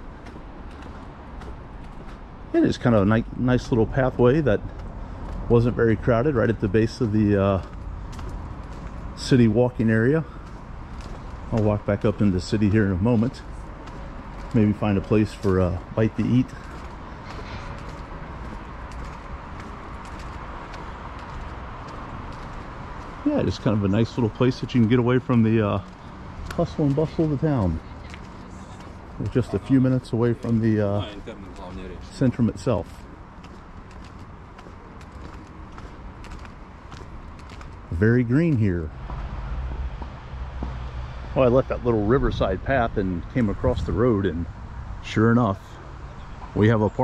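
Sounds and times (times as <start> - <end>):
footsteps on paving: 0.0 - 44.0.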